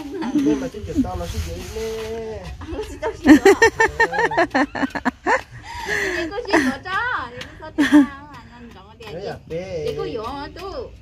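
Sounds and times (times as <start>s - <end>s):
people talking: 0.0s - 10.9s.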